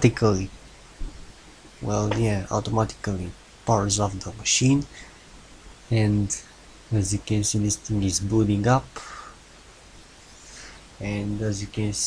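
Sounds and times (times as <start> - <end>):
low steady hum: 0.0 - 12.0
soft microphone hiss: 0.0 - 12.0.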